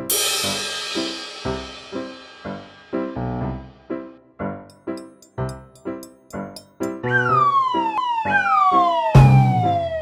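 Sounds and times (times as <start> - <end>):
plucked notes music: 3.0 - 10.0
cartoon falling whistle: 7.0 - 10.0.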